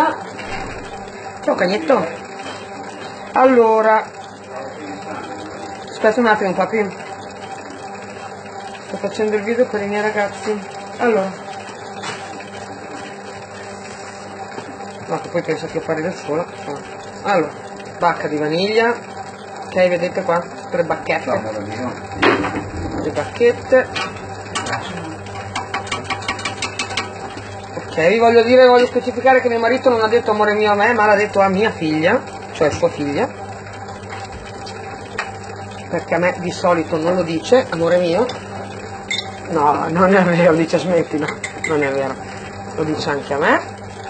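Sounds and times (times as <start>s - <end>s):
dough mixer motor humming: 0.0s - 44.0s.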